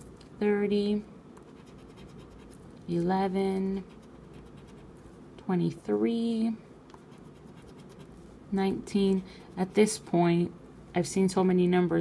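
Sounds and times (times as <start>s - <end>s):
scratching lottery ticket: 1.4s - 3.1s, 3.8s - 5.0s, 7.0s - 8.3s.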